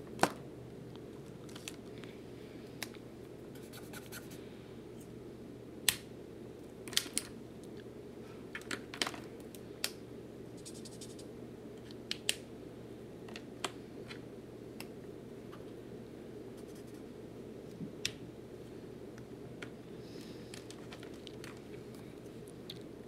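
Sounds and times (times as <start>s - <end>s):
faint room hum: 0.0s - 23.0s
marker tips scratching paper: 16.6s - 17.0s.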